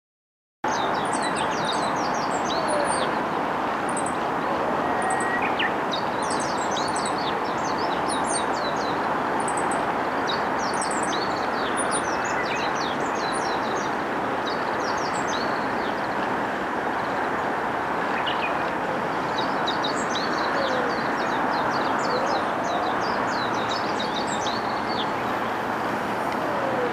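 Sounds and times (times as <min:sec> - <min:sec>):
distant road traffic hum: 0:00.7 - 0:26.9
small birds chirping: 0:04.8 - 0:16.3.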